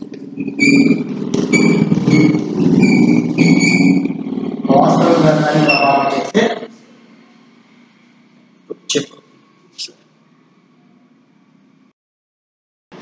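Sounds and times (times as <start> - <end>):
chalk squeaking on blackboard: 0.4 - 4.2.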